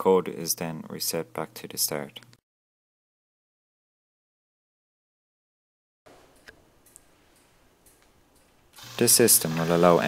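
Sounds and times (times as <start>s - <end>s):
soft clicks: 6.3s - 8.6s.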